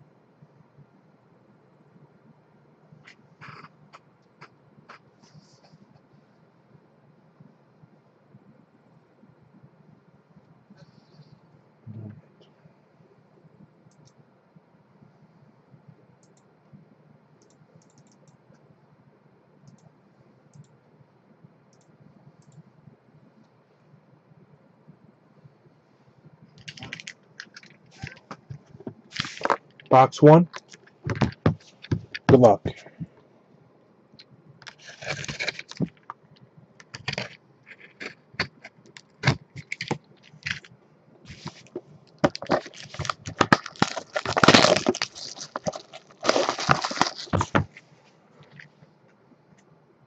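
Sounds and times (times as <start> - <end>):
cardboard and wrapping crinkling: 29.1 - 29.6, 34.6 - 36.1, 36.9 - 38.5, 41.3 - 47.8.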